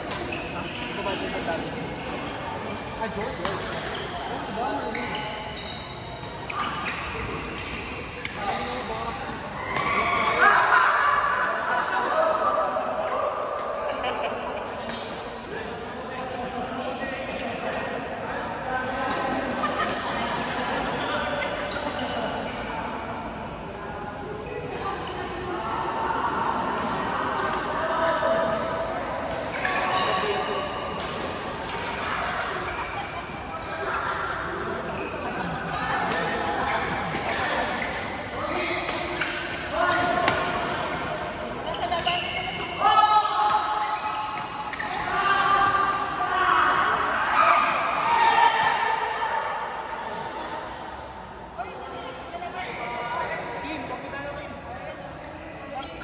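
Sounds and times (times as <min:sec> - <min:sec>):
echoing chatter of voices: 0:00.0 - 0:56.0.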